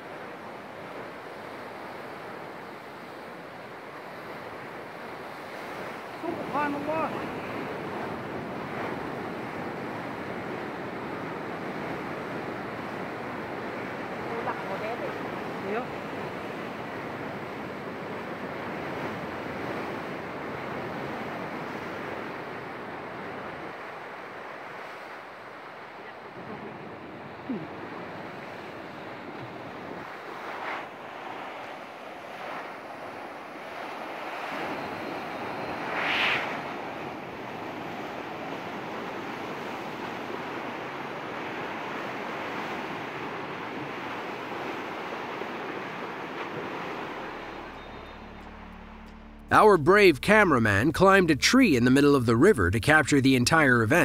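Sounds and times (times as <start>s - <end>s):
turbulent river water rushing: 0.0s - 48.9s.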